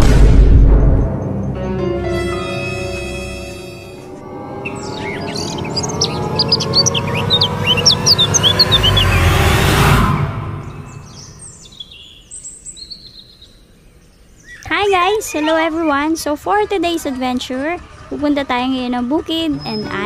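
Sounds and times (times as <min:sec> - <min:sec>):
rush of noise and low tones: 0:00.0 - 0:01.6
birds chirping: 0:00.9 - 0:20.0.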